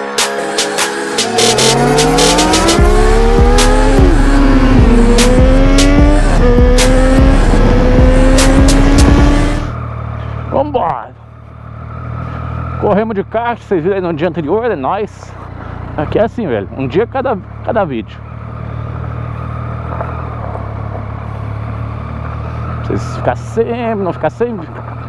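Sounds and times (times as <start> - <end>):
music with heavy bass beat: 0.0 - 9.7
riding noise: 0.6 - 11.1
motorcycle engine accelerating: 1.1 - 25.0.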